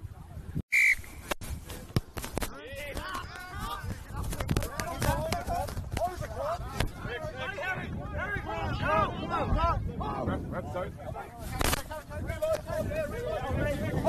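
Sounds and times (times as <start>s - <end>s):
referee's whistle blast: 0.7s - 1.2s
players shouting: 2.6s - 10.3s.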